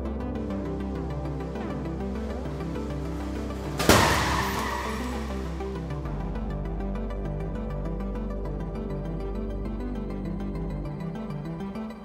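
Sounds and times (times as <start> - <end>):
background music: 0.0 - 12.0
car crash with crumpling metal: 3.5 - 5.7
glass breaking: 3.7 - 5.5.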